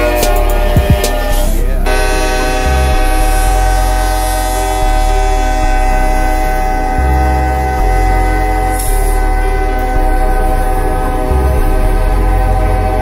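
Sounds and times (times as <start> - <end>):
locomotive air horn chord: 0.0 - 13.0.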